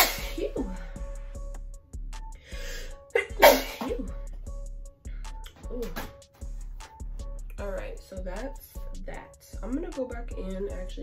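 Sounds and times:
woman sneezing: 0:00.0 - 0:00.5, 0:03.2 - 0:04.1
soft background music: 0:00.0 - 0:11.0.

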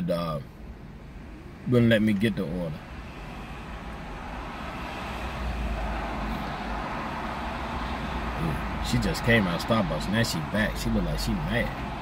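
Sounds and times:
motor vehicle rumble: 0:00.0 - 0:12.0
traffic hiss: 0:00.0 - 0:12.0.

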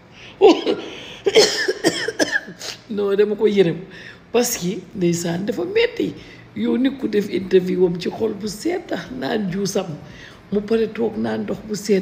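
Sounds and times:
woman coughing: 0:00.4 - 0:02.9.

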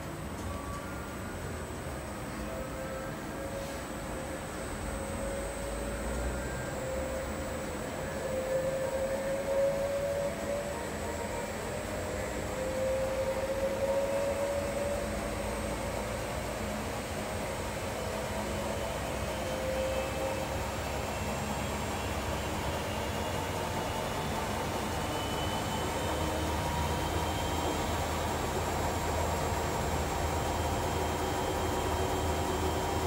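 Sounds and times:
washing machine spinning: 0:00.0 - 0:33.0.

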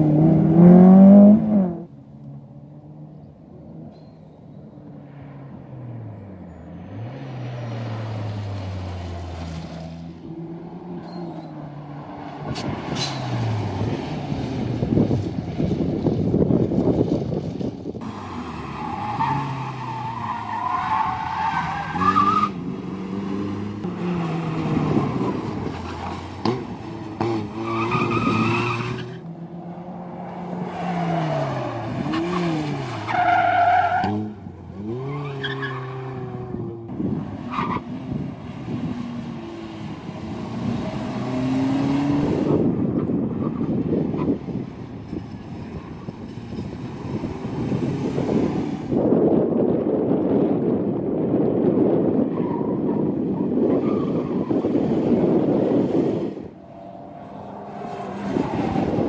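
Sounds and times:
car engines revving hard: 0:00.0 - 0:04.0, 0:05.5 - 0:59.0.

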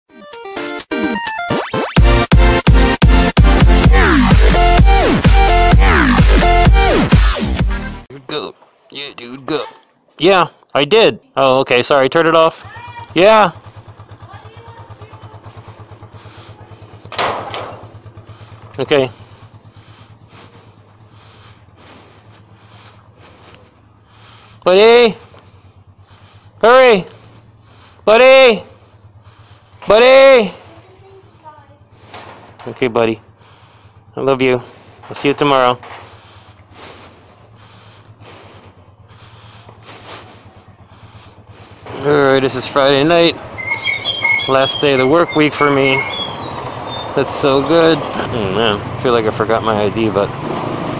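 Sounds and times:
motorcycle engine idling: 0:02.0 - 0:50.4
road noise: 0:02.6 - 0:50.9.

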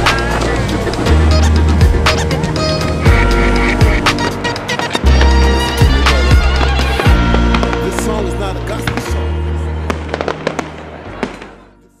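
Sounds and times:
background music: 0:00.0 - 0:12.0
fireworks cracking: 0:04.0 - 0:11.7.

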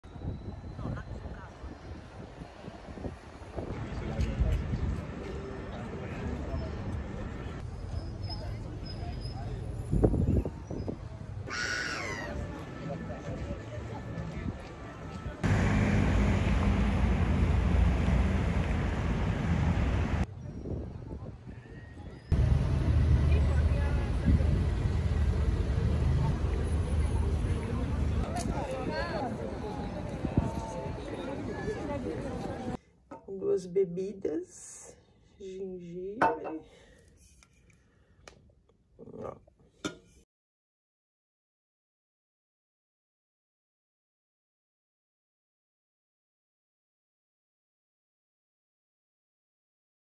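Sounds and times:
people talking in a crowd: 0:00.2 - 0:15.5, 0:20.3 - 0:33.3
traffic rumble: 0:00.2 - 0:20.3, 0:22.2 - 0:32.8
wind buffeting microphone: 0:19.3 - 0:22.2, 0:28.2 - 0:32.7.

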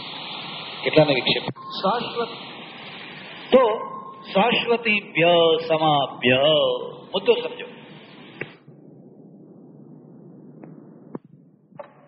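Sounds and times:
cassette tape hiss: 0:00.0 - 0:12.0
sharp click: 0:08.4 - 0:08.6.

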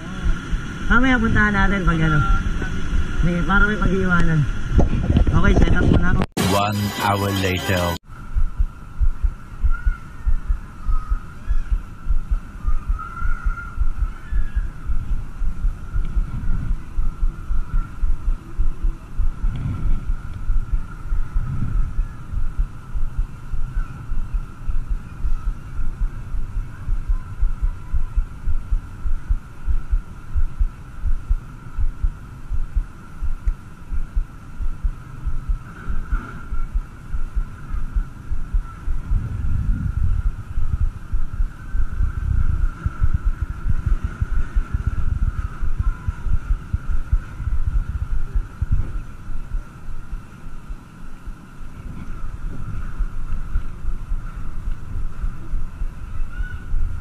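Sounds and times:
wind buffeting microphone: 0:00.0 - 0:06.3, 0:08.2 - 0:57.0
steady high-pitched hum: 0:00.0 - 0:57.0.

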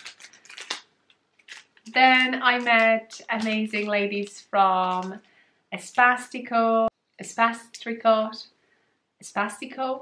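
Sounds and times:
packaging rustling and clicking: 0:00.0 - 0:05.2.

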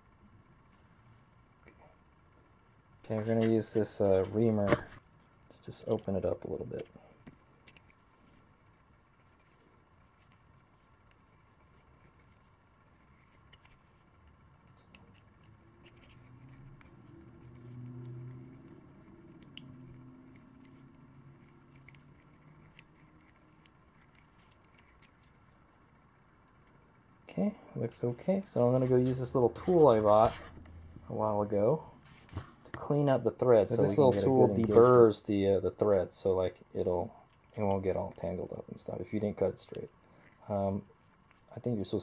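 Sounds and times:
faint low murmur: 0:00.0 - 0:42.0.

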